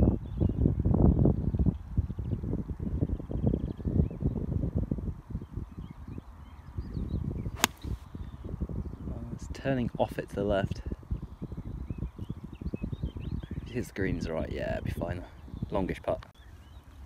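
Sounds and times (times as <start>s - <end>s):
wind buffeting microphone: 0.0s - 17.0s
golf club striking ball: 7.6s - 8.0s.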